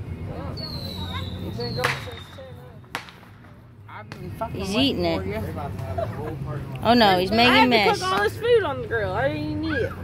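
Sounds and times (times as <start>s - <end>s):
sharp snap: 1.8s - 4.3s.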